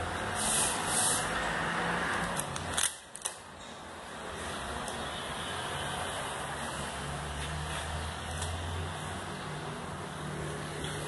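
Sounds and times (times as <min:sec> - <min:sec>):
hissy rubbing strokes: 0:00.3 - 0:01.4.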